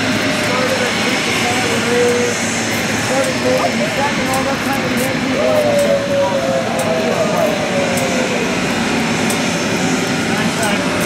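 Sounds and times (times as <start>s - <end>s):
people talking: 0.0s - 9.5s, 10.2s - 11.0s
jet aircraft noise: 0.0s - 11.0s.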